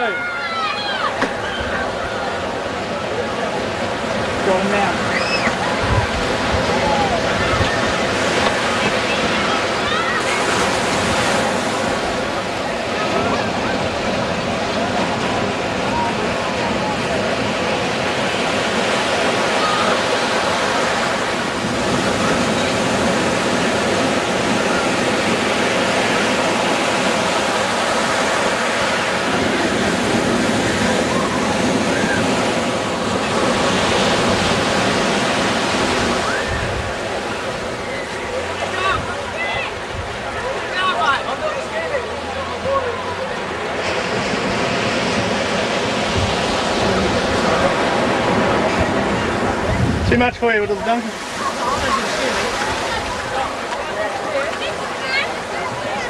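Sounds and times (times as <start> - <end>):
faint distant voices: 0.0 - 56.0
surf breaking: 0.0 - 56.0.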